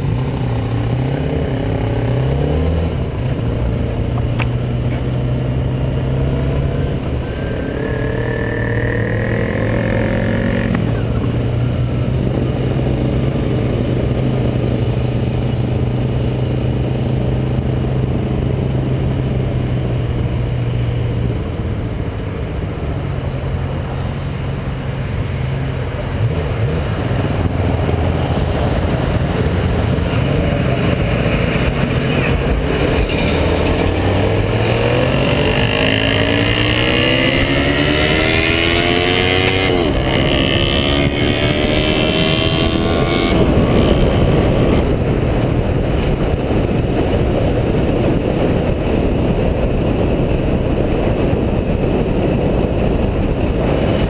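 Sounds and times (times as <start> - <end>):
motorcycle engine accelerating: 0.0 - 54.0
wind and road noise: 0.0 - 54.0.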